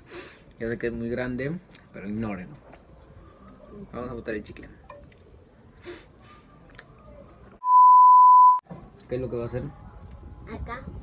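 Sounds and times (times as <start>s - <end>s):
high electronic beep tone: 7.6s - 8.6s.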